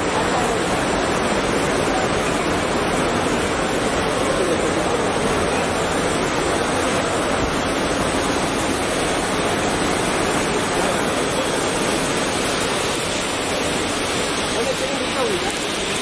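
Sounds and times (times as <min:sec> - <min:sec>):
busy open-air ambience: 0:00.0 - 0:16.0.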